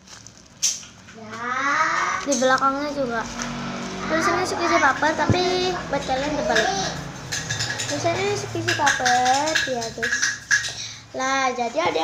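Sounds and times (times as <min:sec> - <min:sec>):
sharp crackle: 0:00.0 - 0:01.2.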